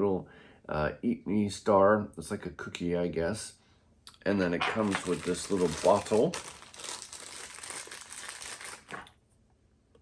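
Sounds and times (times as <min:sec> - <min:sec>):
plastic bag crinkling: 0:04.6 - 0:09.2.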